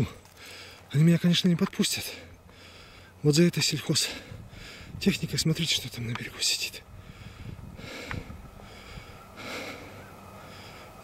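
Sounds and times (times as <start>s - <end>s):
faint outdoor hush: 0.0s - 11.0s
person breathing: 0.3s - 0.9s, 2.2s - 3.2s, 4.0s - 5.0s, 6.9s - 11.0s.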